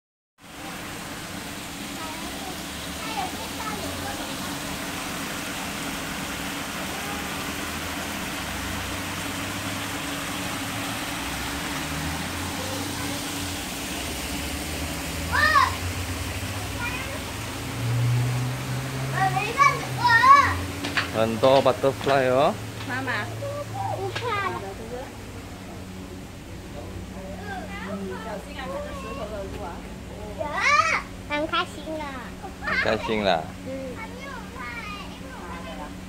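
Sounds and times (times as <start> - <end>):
children's voices: 1.9 - 4.3, 12.4 - 13.4, 15.2 - 15.9, 16.6 - 17.5, 19.0 - 20.7, 23.3 - 24.9, 27.3 - 29.6, 30.2 - 33.0, 33.9 - 36.0.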